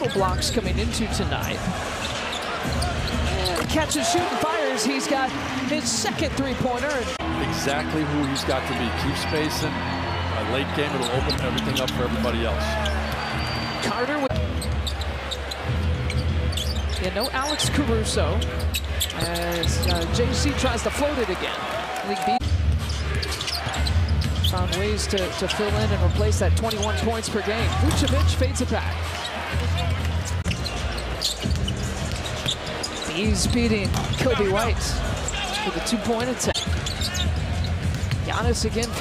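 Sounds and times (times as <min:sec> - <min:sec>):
arena crowd noise: 0:00.0 - 0:39.0
sneaker squeaks: 0:01.4 - 0:04.4, 0:09.2 - 0:17.7, 0:18.3 - 0:20.2, 0:22.3 - 0:27.0, 0:27.6 - 0:28.4, 0:29.0 - 0:39.0
basketball bouncing on court: 0:31.4 - 0:34.8, 0:36.1 - 0:39.0.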